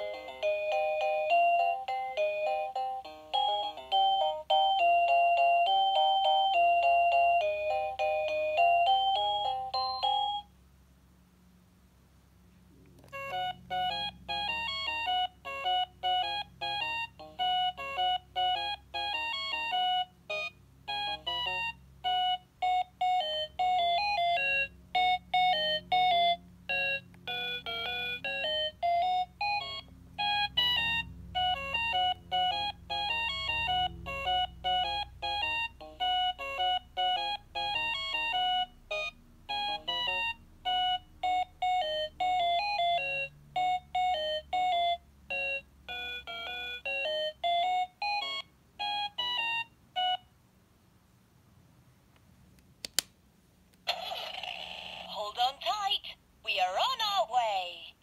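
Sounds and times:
toy electronic beeping melody: 0:00.0 - 0:10.5, 0:13.1 - 0:50.3.

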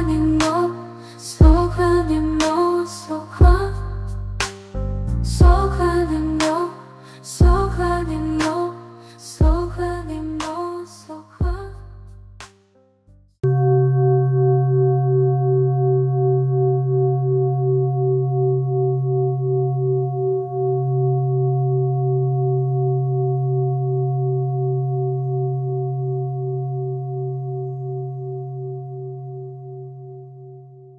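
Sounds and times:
singing bowl ringing: 0:13.4 - 0:30.5.

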